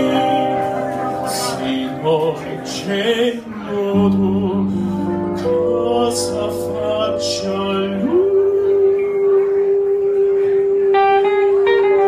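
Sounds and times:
keyboard accompaniment: 0.0s - 12.0s
man singing long note: 0.0s - 12.0s.

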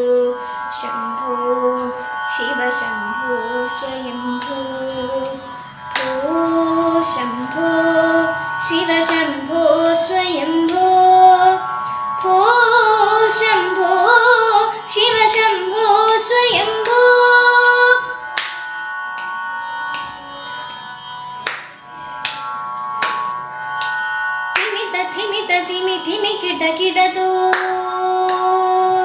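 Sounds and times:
boy singing: 0.0s - 11.6s, 12.2s - 18.2s, 24.6s - 29.0s
steady drone: 0.0s - 29.0s.

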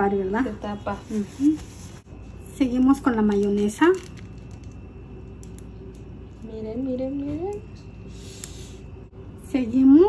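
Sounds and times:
low steady room hum: 0.0s - 10.0s.

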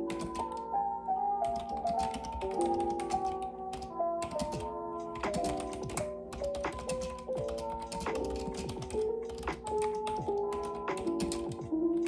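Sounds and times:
fast typing on keyboard: 0.0s - 0.6s, 1.4s - 12.0s
gentle background music: 0.0s - 12.0s.

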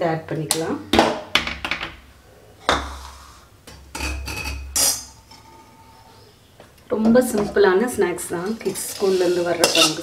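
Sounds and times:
metal utensils clinking: 3.9s - 5.6s, 8.4s - 10.0s.

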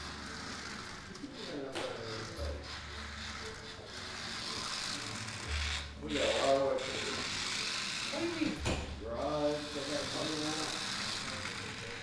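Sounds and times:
toy car electric motor whirring: 0.0s - 12.0s.

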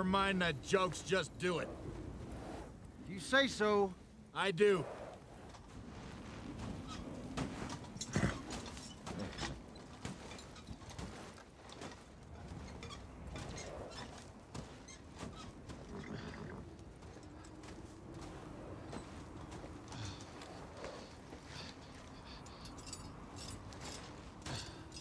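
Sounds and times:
blizzard wind: 0.0s - 25.0s
hooves and footsteps crunching snow: 4.4s - 25.0s
harness clinking: 6.9s - 18.2s, 18.8s - 25.0s.

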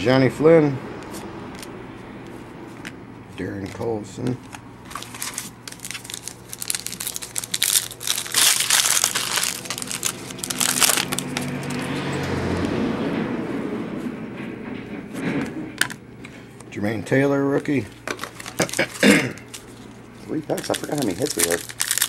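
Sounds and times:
plastic wrapper crinkling and tearing: 4.4s - 11.9s, 18.1s - 22.0s.

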